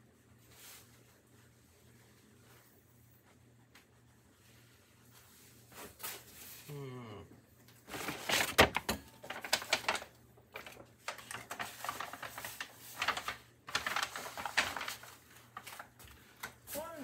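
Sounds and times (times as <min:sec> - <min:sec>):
paper bag crinkling: 0:07.8 - 0:17.0.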